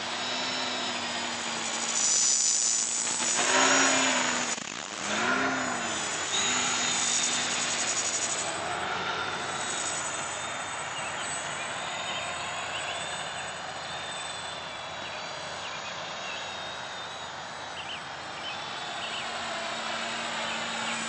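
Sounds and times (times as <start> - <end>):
quadcopter propellers buzzing: 0.0 - 21.0.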